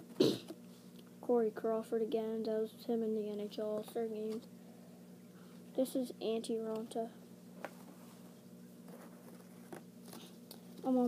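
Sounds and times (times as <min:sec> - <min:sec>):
steady low hum: 0:00.0 - 0:11.0
boy speaking: 0:01.2 - 0:04.4, 0:05.7 - 0:07.2, 0:10.8 - 0:11.0.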